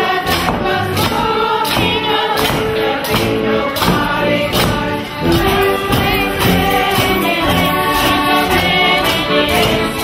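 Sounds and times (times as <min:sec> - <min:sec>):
group singing together: 0:00.0 - 0:10.0
live band with accordion and tuba: 0:04.0 - 0:10.0.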